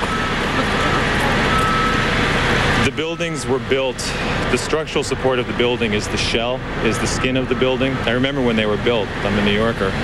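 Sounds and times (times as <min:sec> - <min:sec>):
traffic noise: 0:00.0 - 0:10.0.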